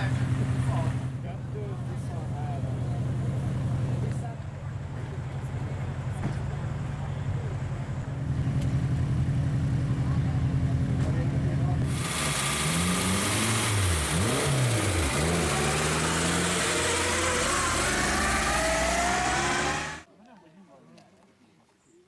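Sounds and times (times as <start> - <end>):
car engine idling and revving: 0.0 - 20.1.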